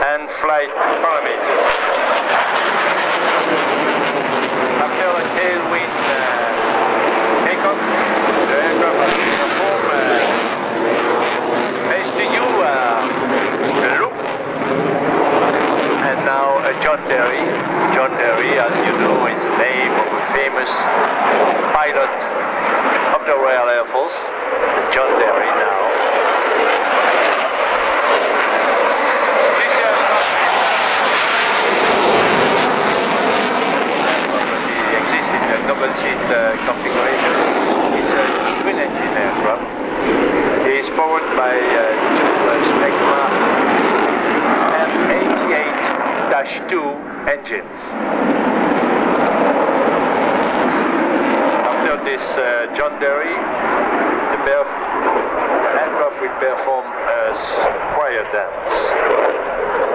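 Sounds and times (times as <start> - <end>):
commentator speaking over loudspeaker: 0.0 - 2.6, 4.8 - 15.4, 16.0 - 21.0, 21.6 - 26.4, 29.4 - 31.3, 33.9 - 43.7, 44.4 - 48.0, 51.6 - 59.1
jet fighter flying overhead: 0.0 - 59.9.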